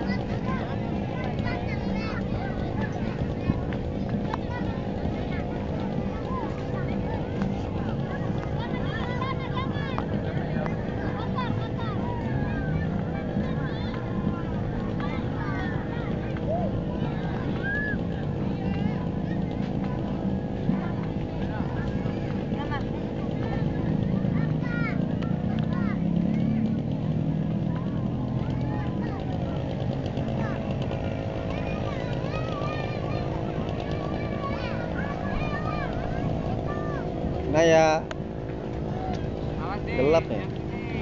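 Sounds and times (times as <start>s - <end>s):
babble of people talking: 0.0s - 41.0s
crowd voices and calls: 0.0s - 41.0s
steady low rumble: 0.0s - 41.0s
children's high-pitched calls: 15.2s - 19.5s, 28.2s - 37.2s.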